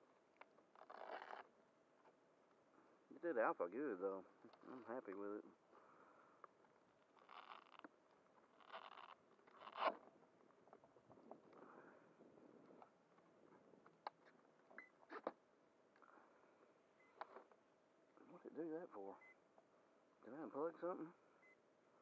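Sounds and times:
scraping rasps: 0:00.8 - 0:01.5, 0:08.6 - 0:10.0.

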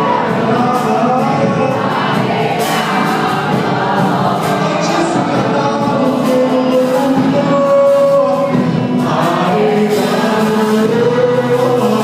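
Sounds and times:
church band playing: 0:00.0 - 0:12.0
congregation singing: 0:00.0 - 0:12.0.

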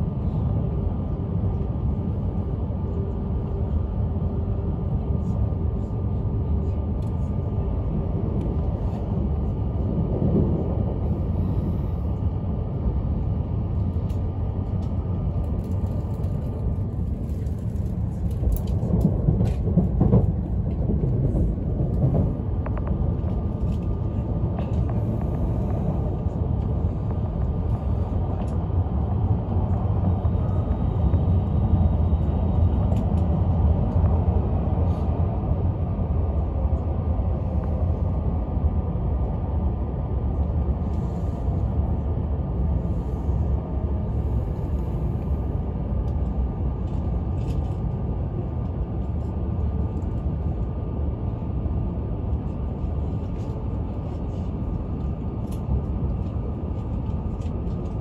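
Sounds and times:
train cabin low rumble: 0:00.0 - 0:58.0.

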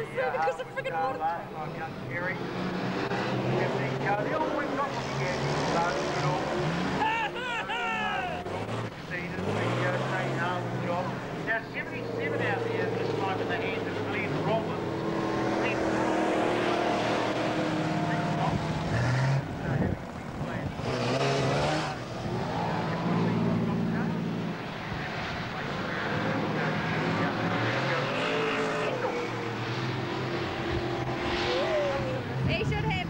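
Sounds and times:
race car engines revving: 0:00.0 - 0:33.0.

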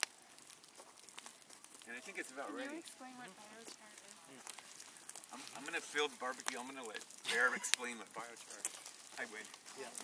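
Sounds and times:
wood fire crackling: 0:00.0 - 0:10.0.

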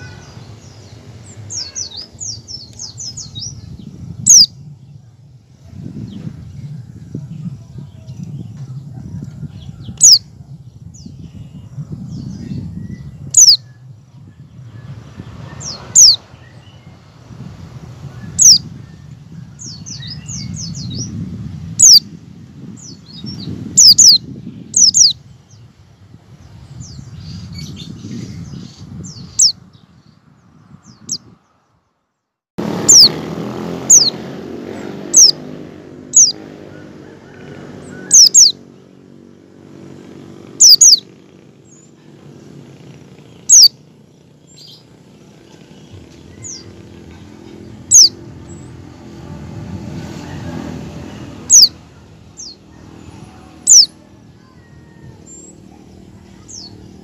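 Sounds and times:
white-eye bird chirping: 0:00.0 - 0:04.5, 0:09.9 - 0:10.2, 0:11.0 - 0:17.0, 0:18.1 - 0:21.2, 0:21.8 - 0:22.0, 0:22.8 - 0:25.7, 0:26.8 - 0:29.6, 0:32.8 - 0:33.2, 0:33.8 - 0:36.8, 0:37.8 - 0:39.2, 0:40.0 - 0:49.1, 0:51.4 - 0:57.0.

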